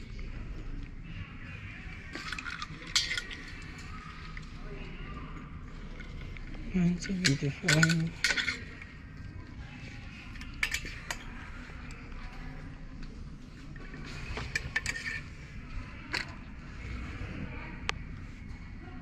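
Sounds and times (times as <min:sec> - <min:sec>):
clothes hangers clinking on metal rail: 0:07.0 - 0:08.6.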